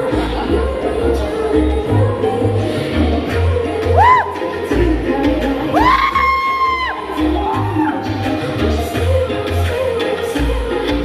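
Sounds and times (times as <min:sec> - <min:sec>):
crowd noise: 0:00.0 - 0:11.0
live concert music with heavy bass: 0:00.0 - 0:11.0
rising whoop: 0:04.0 - 0:04.4, 0:05.7 - 0:08.2.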